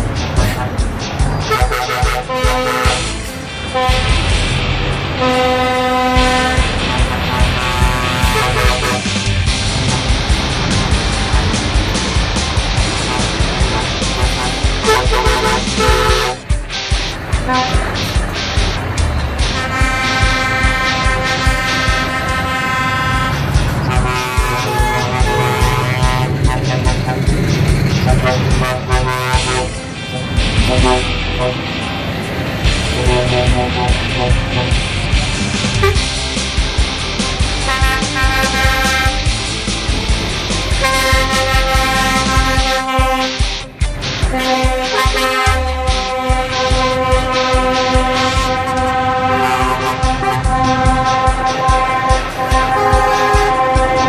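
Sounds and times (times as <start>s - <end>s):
music with steady beat: 0.0s - 54.0s
truck air horn blasts: 0.4s - 4.3s, 5.2s - 10.3s, 12.9s - 16.5s, 17.4s - 18.1s, 19.4s - 31.8s, 32.8s - 35.0s, 35.7s - 36.1s, 37.6s - 39.4s, 40.7s - 43.5s, 44.2s - 54.0s.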